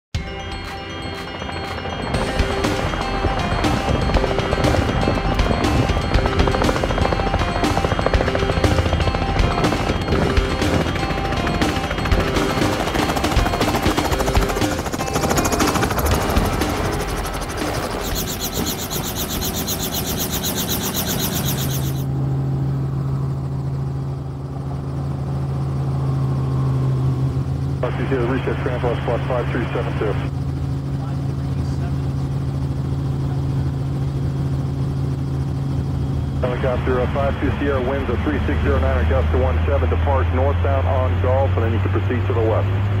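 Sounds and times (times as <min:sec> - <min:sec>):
background music: 0:00.2 - 0:22.0
helicopter engine and rotor drone: 0:00.2 - 0:43.0.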